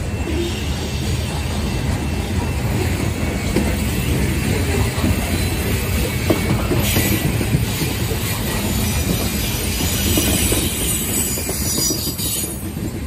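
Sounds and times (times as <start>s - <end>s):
train wheels rumbling on rail: 0.0s - 13.0s.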